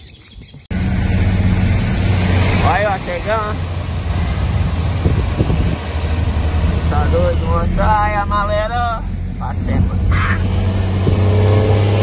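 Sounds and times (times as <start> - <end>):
tyres on wet road: 0.7 - 12.0
vehicle engine drone: 0.7 - 12.0.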